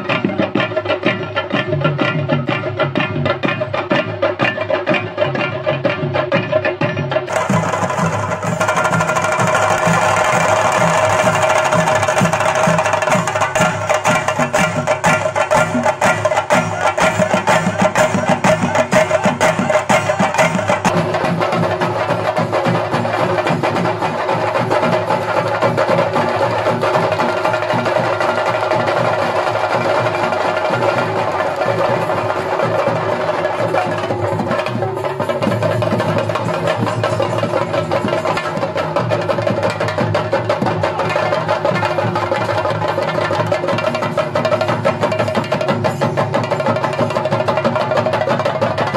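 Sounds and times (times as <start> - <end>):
drum ensemble rapid roll: 0.0 - 48.9.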